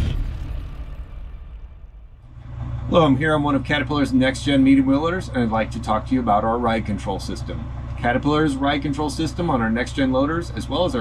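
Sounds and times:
electronic intro music: 0:00.0 - 0:02.3
wheel loader engine idling: 0:00.0 - 0:11.0.

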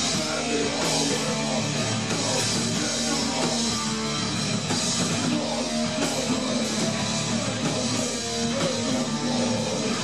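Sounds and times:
drum kit: 0:00.0 - 0:10.0
electric guitars through amplifiers: 0:00.0 - 0:10.0.

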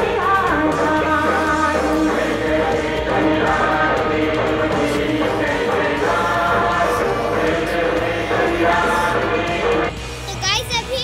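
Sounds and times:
choir singing held notes: 0:00.0 - 0:10.2.

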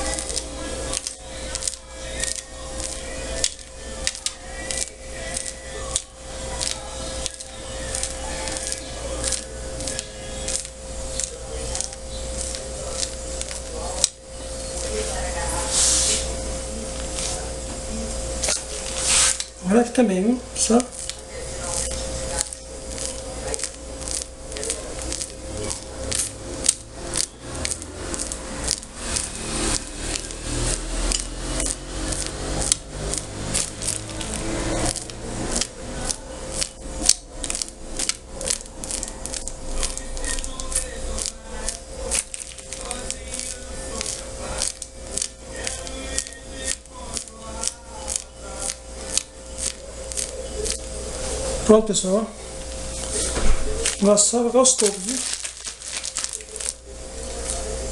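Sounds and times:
plastic piping bag squeezed: 0:00.0 - 0:15.0, 0:18.4 - 0:19.6, 0:20.6 - 0:50.9, 0:52.8 - 0:57.8
steady hum: 0:00.0 - 0:57.9.

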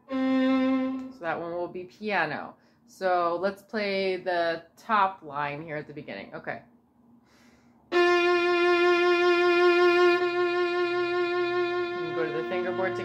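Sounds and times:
violin long bowed note: 0:00.0 - 0:01.3, 0:07.9 - 0:13.0.

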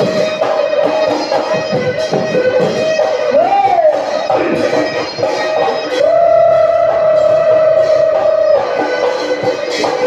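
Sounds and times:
live folk music: 0:00.0 - 0:10.0
high held note: 0:02.0 - 0:10.0.

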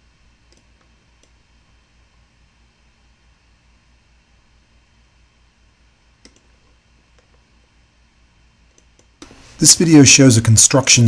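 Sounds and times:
faint low hum: 0:00.0 - 0:11.0
computer mouse click: 0:00.5 - 0:01.4, 0:06.2 - 0:06.5, 0:08.7 - 0:09.4.

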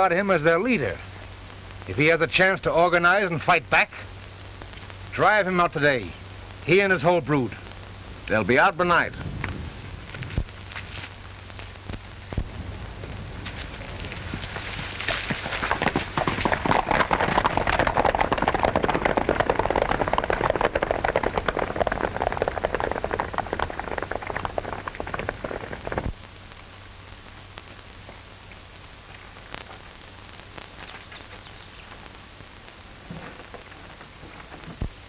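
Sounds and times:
film soundtrack hiss and hum: 0:00.0 - 0:35.0.

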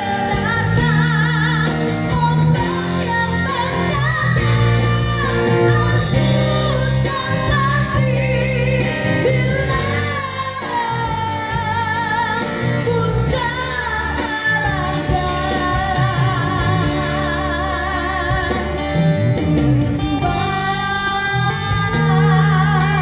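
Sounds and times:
woman singing through microphone: 0:00.0 - 0:23.0.

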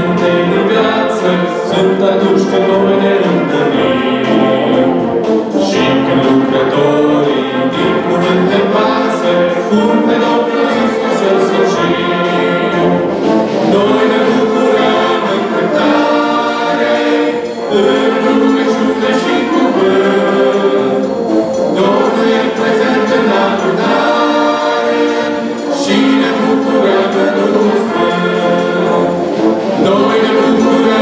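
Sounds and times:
brass band playing: 0:00.0 - 0:31.0
group of voices singing: 0:00.0 - 0:31.0.

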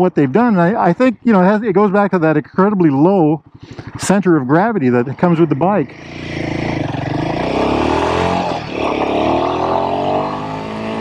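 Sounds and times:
motorcycle engine accelerating: 0:00.4 - 0:11.0.

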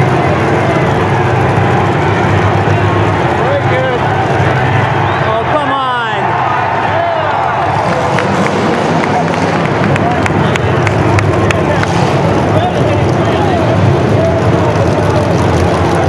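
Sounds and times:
car engines rumbling: 0:00.0 - 0:16.0
crowd hubbub: 0:00.0 - 0:16.0.

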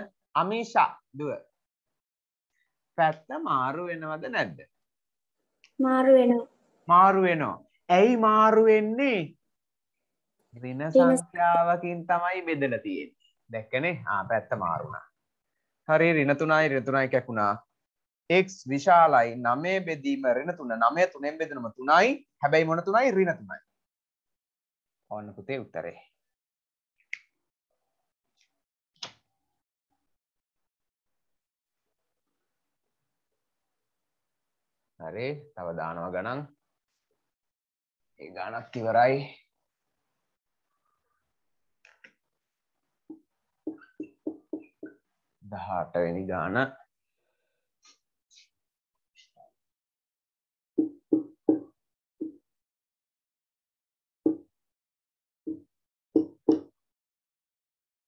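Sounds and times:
marker tapping on whiteboard: 0:43.1 - 0:45.0, 0:50.8 - 0:52.4, 0:54.3 - 0:54.5, 0:55.5 - 0:56.7.

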